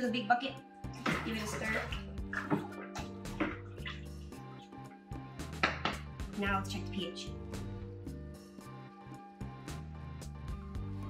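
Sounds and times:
background music: 0.0 - 11.0
water swishing and dripping: 0.8 - 6.3.

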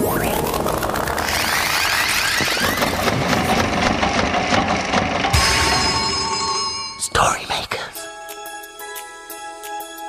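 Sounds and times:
fast clattering and ticking: 0.3 - 5.4
chord of ringing tones: 5.3 - 7.9.

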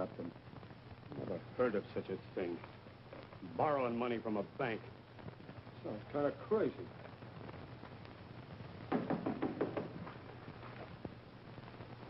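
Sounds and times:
rapid knocking on wooden door: 8.9 - 10.1.

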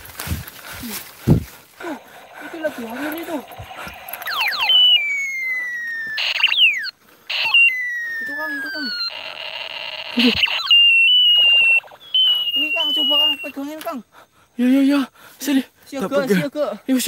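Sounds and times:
short crackly bursts: 1.8 - 13.5
steady high electronic tone: 1.8 - 13.5
downward sliding beeping tones: 2.0 - 13.5
toy blaster pew sweeps: 2.8 - 12.8.

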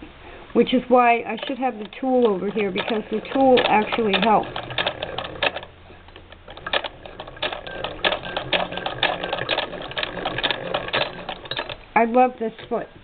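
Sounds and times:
sewing machine clattering: 1.1 - 11.8.

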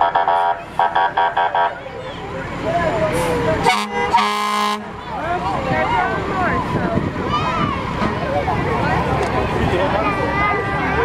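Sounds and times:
fire engine siren pulses: 0.0 - 1.8
air horn blasts: 3.6 - 4.9
children shouting: 5.1 - 9.0, 9.7 - 11.0.

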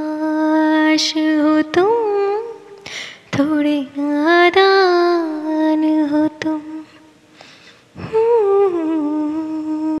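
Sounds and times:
woman humming: 8.0 - 10.0.

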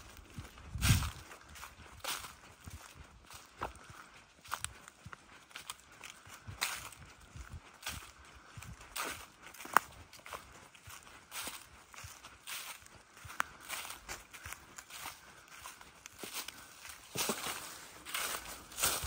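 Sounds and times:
footsteps crunching dry leaves: 0.0 - 19.0.

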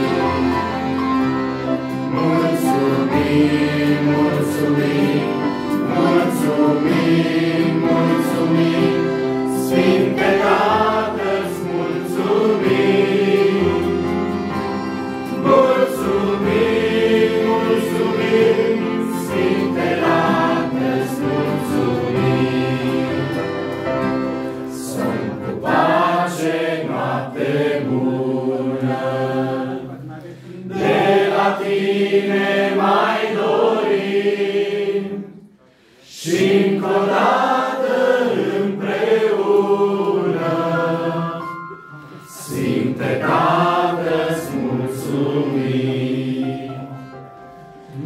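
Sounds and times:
group singing a hymn: 0.0 - 48.0.

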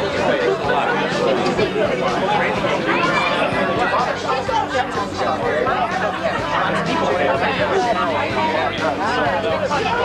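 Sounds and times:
overlapping conversation: 0.0 - 10.0.

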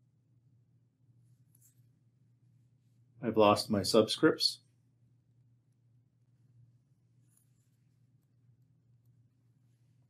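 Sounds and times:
steady low hum: 0.0 - 10.0
stylus scratching on tablet screen: 1.2 - 2.0, 7.1 - 8.3.

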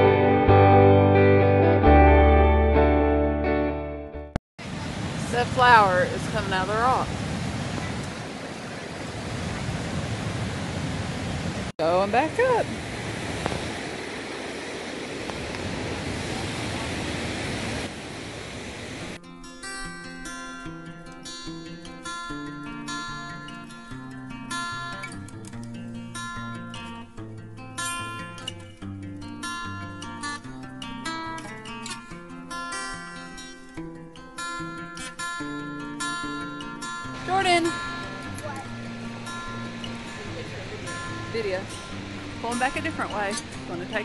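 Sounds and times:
acoustic guitar music: 0.0 - 4.4, 19.2 - 44.0
steady rushing noise: 37.2 - 44.0.

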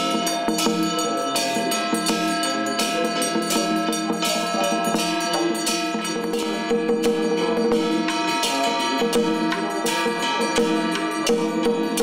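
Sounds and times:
held melodic tones: 0.0 - 12.0
percussion strikes: 0.0 - 12.0.

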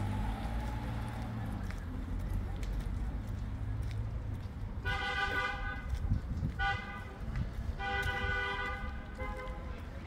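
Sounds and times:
street traffic rumble: 0.0 - 10.0
car horn honking: 7.8 - 9.6.

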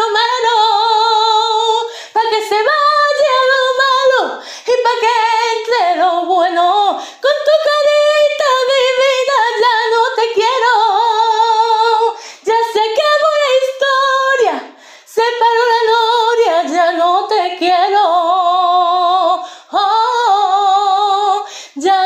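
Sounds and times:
woman singing unaccompanied: 0.0 - 22.0.

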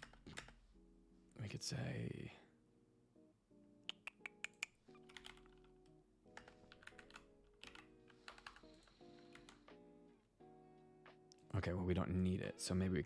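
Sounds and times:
typing on computer keyboard: 0.0 - 0.6, 4.5 - 5.7, 6.3 - 9.7
faint background music: 0.0 - 13.0.

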